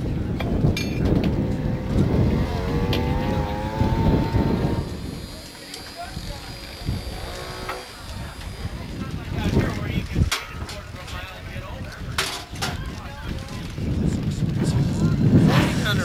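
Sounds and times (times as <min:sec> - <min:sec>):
low rumble: 0:00.2 - 0:05.5.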